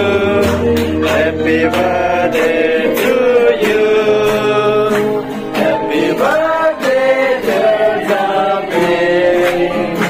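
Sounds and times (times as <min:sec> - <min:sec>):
voices singing together: 0:00.0 - 0:10.0.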